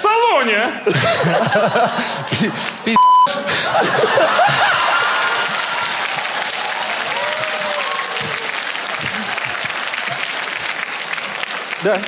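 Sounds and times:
censor bleep: 0:03.0 - 0:03.5.

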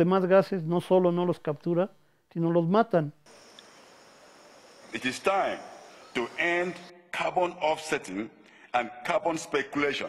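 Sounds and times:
high-pitched insect chorus: 0:03.3 - 0:06.9.

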